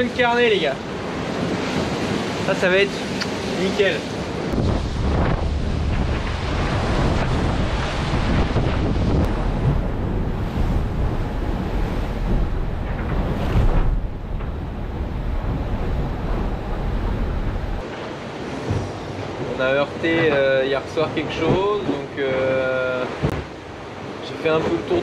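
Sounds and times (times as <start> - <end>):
water rushing past hull: 0.0 - 25.0
wind buffeting microphone: 0.8 - 19.6.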